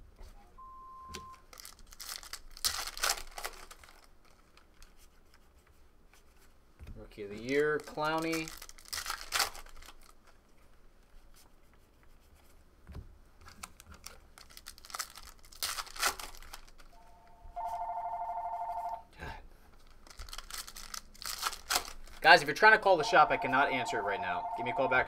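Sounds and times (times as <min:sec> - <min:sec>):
foil packs crinkling and tearing: 0:01.4 - 0:05.0, 0:07.4 - 0:10.3, 0:13.5 - 0:16.9, 0:19.8 - 0:22.5
cards being handled: 0:07.2 - 0:16.9, 0:19.6 - 0:23.0
telephone ringing: 0:17.0 - 0:19.1, 0:22.9 - 0:25.0.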